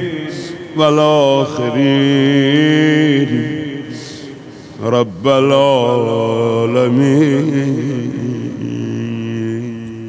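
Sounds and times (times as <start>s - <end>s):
man chanting a long note: 0.0s - 10.0s.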